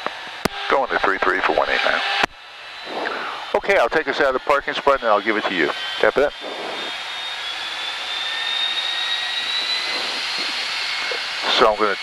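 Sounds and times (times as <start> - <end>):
jet engine rushing and whine: 0.0 - 12.0.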